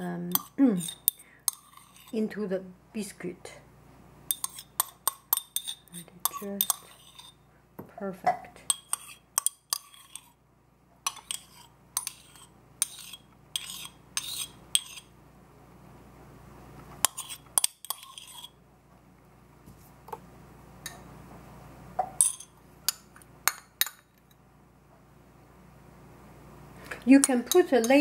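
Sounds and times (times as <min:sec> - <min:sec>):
metal spoon clinking on clay pot: 0:00.3 - 0:02.2, 0:04.3 - 0:07.4, 0:08.7 - 0:10.3, 0:27.2 - 0:28.0.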